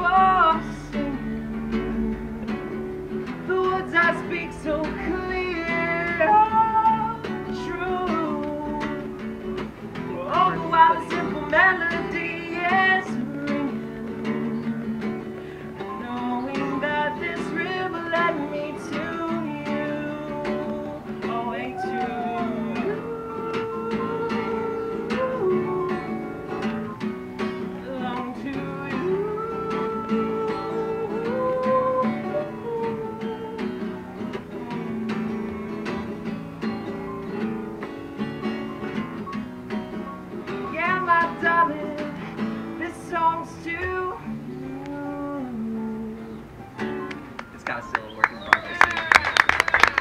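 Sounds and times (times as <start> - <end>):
man singing: 0.0 - 2.8, 3.4 - 9.2, 10.0 - 26.7, 27.7 - 36.3, 40.6 - 46.5
acoustic guitar strumming: 0.0 - 50.0.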